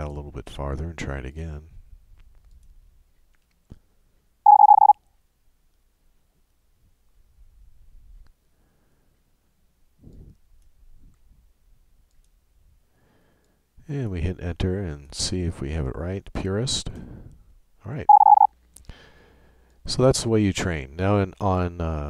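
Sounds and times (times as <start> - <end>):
high-speed morse code tone: 4.5 - 5.0, 18.1 - 18.5.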